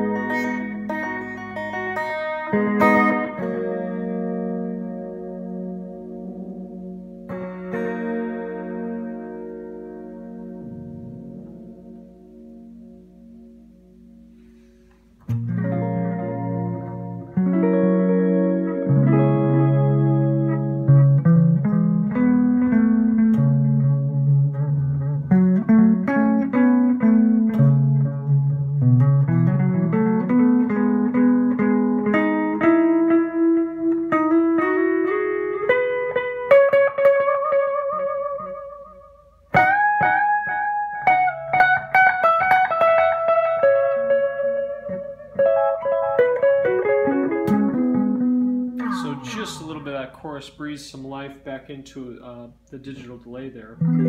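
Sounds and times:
electric guitar with delay: 0.0 - 50.5, 53.8 - 54.0.

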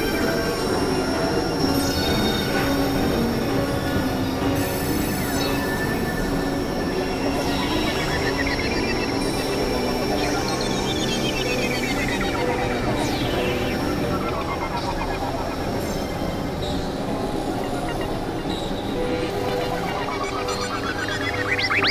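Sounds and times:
high sweeping tones: 0.0 - 21.9
synthesizer drone with industrial noise: 0.0 - 21.9.

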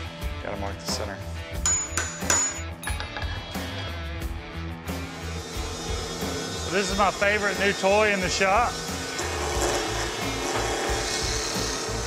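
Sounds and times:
background music: 0.0 - 12.0
hammer striking metal punch: 1.6 - 3.4.

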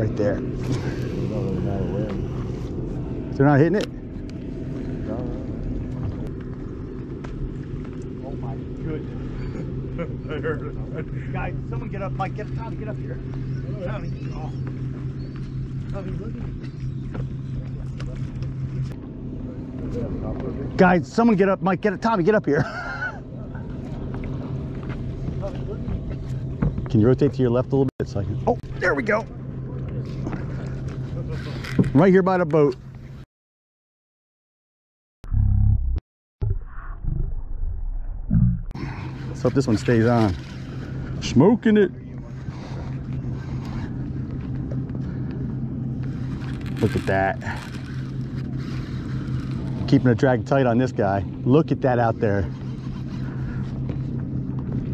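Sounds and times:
slowed-down low rumble: 0.0 - 22.0, 35.2 - 54.9
boat engine idling: 0.0 - 33.2, 38.8 - 54.9.

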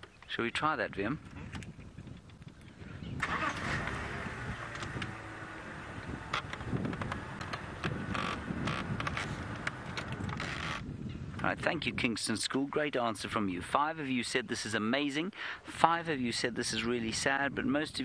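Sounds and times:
vehicle engine running: 3.2 - 10.6
vehicle knocks and rattles: 6.1 - 10.8.

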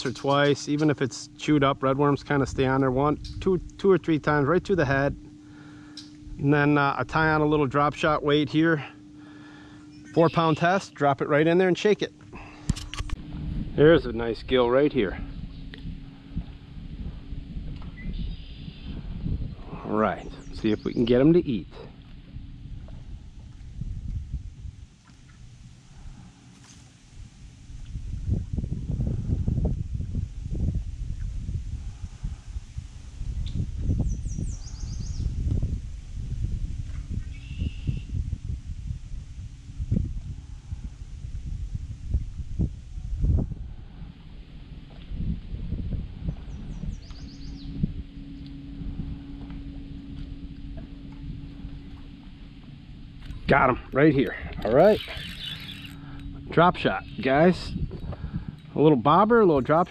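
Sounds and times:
faint steady hum: 0.0 - 59.9
low rumble: 0.0 - 59.9
bird chirps: 9.9 - 10.8, 17.9 - 19.0, 20.2 - 21.3, 33.4 - 35.4, 37.2 - 38.1, 46.5 - 48.8, 54.6 - 57.4.

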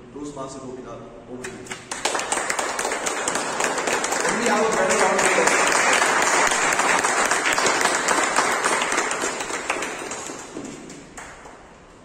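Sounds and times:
audience applauding: 1.7 - 11.9.

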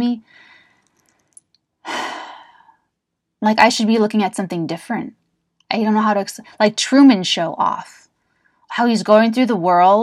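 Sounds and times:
woman sighing breath: 1.9 - 2.8.

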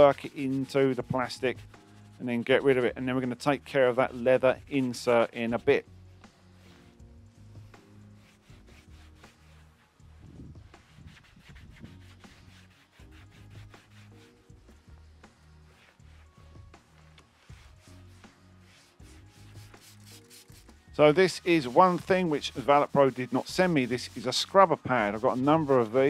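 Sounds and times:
quiet background music: 0.0 - 26.0
cloth wiping plastic door panel: 7.6 - 26.0.

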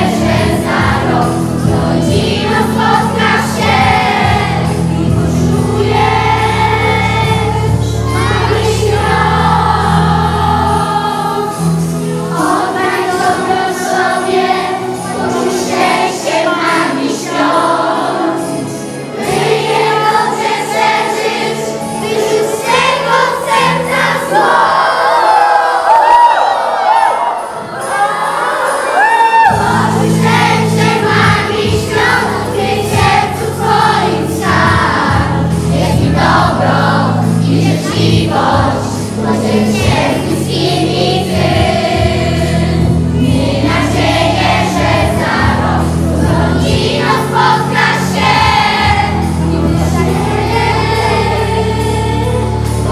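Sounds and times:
instrumental accompaniment: 0.0 - 25.1, 27.2 - 52.9
children's choir singing: 0.0 - 52.9.

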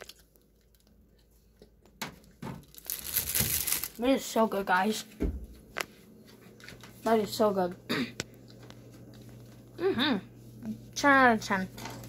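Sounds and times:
pizza tearing and chewing: 0.0 - 1.9, 2.6 - 4.0.

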